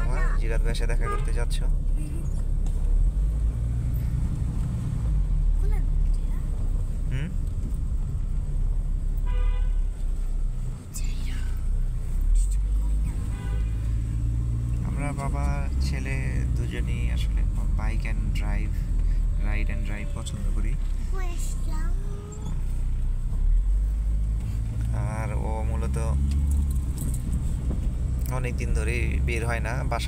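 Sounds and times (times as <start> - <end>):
car engine and tyres rumbling: 0.0 - 30.0
car horn toot: 1.0 - 1.4, 9.2 - 10.0, 13.2 - 13.9.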